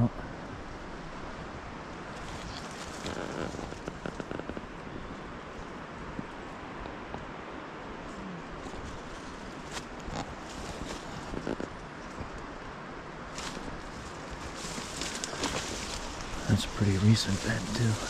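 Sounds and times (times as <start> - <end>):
steady background hiss: 0.0 - 18.0
shrub branches brushing: 2.1 - 4.7, 8.6 - 12.5, 13.3 - 18.0
footsteps crunching on dry leaves: 13.3 - 18.0.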